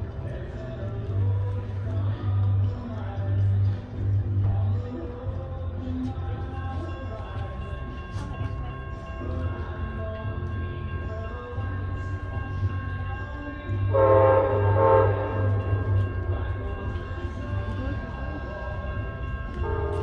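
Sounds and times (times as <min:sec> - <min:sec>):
steady low rumble: 0:00.0 - 0:20.0
train horn blasts: 0:13.9 - 0:16.0, 0:19.6 - 0:20.0.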